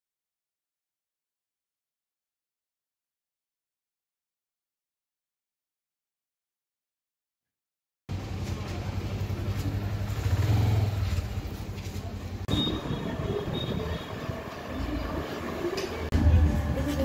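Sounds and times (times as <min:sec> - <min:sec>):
vehicle engine and road rumble: 0:08.1 - 0:17.0.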